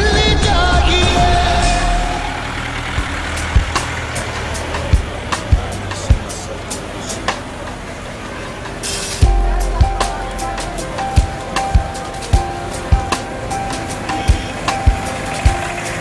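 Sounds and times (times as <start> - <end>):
music track: 0.0 - 8.0, 8.7 - 16.0
bus passing: 0.0 - 16.0
traffic rumble: 0.0 - 16.0.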